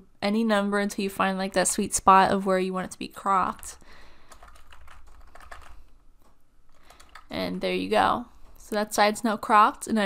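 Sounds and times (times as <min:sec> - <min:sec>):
keyboard keys tapping: 0:04.3 - 0:07.3.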